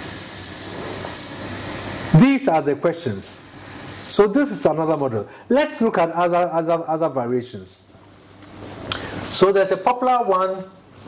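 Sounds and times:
even hiss: 0:00.0 - 0:07.9.

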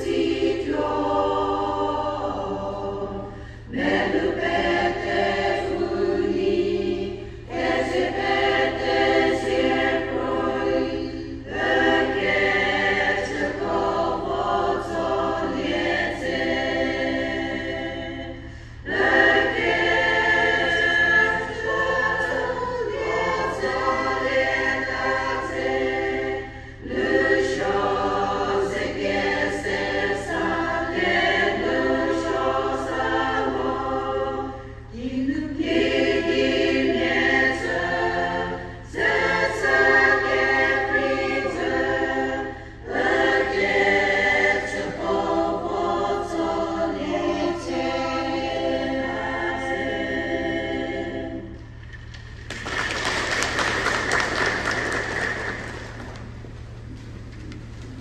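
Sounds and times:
women's choir singing hymn: 0:00.0 - 0:56.8.

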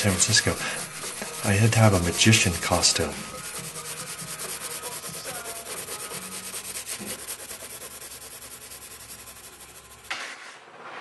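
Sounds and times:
fast rhythmic rasping: 0:00.0 - 0:10.1.

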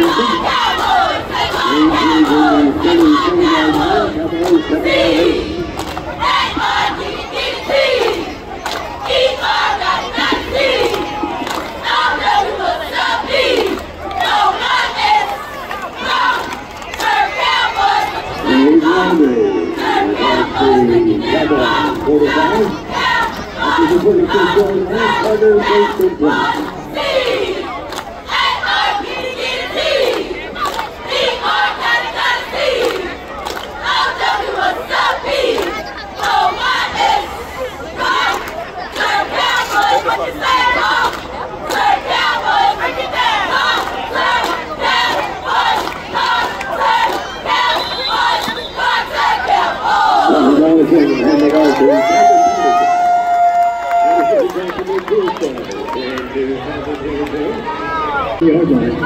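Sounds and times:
cheerleaders shouting in unison: 0:00.0 - 0:33.2, 0:33.8 - 0:54.6
crowd voices: 0:00.0 - 0:59.0.

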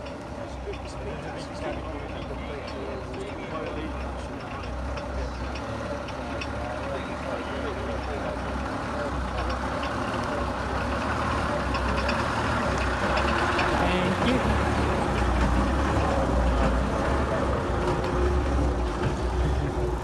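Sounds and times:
coach engine driving past: 0:00.0 - 0:20.0.

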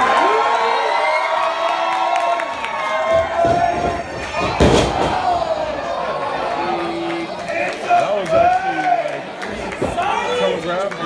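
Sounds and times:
crowd shouting: 0:00.0 - 0:10.6.

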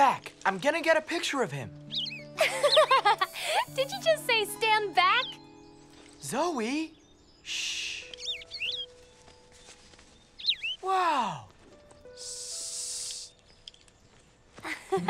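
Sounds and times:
soft background music: 0:00.0 - 0:15.0
bird chirps: 0:01.8 - 0:10.9, 0:11.8 - 0:14.5
brief bursts of hiss: 0:12.2 - 0:13.4.

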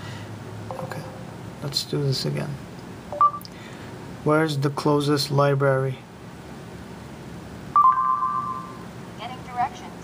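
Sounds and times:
voice search chime: 0:00.7 - 0:01.3.

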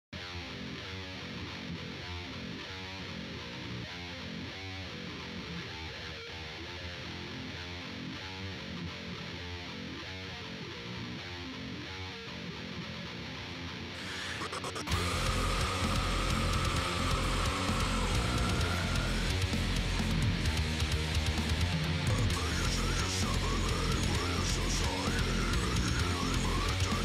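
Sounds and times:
electric guitar repeating figure: 0:00.2 - 0:27.0.

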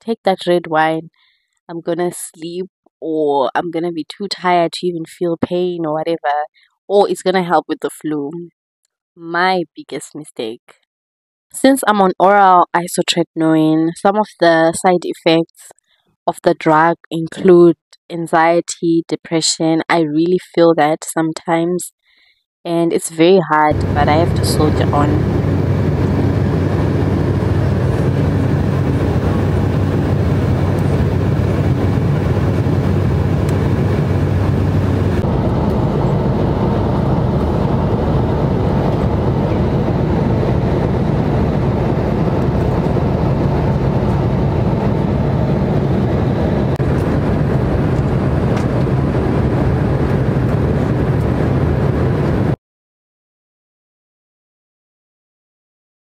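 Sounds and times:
jet airliner cabin noise: 0:23.4 - 0:52.6.

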